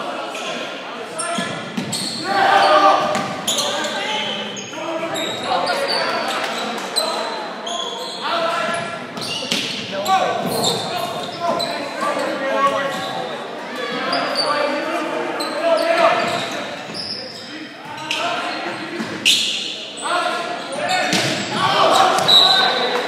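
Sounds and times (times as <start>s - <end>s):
people calling out in a gym: 0.0s - 23.0s
volleyball hits: 21.0s - 23.0s.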